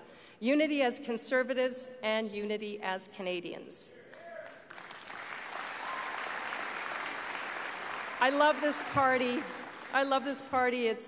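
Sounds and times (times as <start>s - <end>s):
audience applauding: 4.4s - 10.3s.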